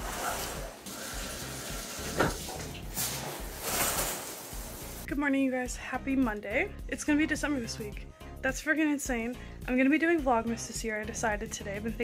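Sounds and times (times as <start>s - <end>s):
shower water spraying: 0.0s - 5.1s
soft background music: 0.0s - 12.0s.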